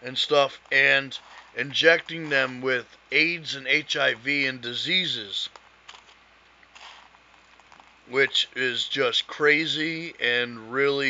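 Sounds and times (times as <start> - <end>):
faint microphone hiss: 0.0 - 11.0
soft breath: 1.2 - 1.6.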